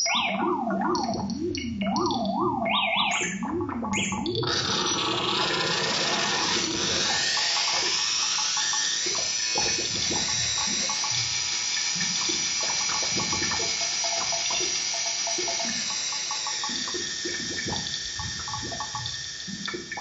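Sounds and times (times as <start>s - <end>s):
synthesizer filtered noise hiss: 3.9s - 20.0s.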